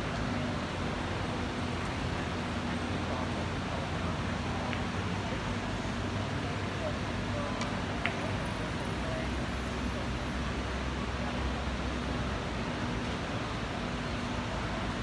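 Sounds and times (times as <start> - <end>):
faint voices: 0.0 - 15.0.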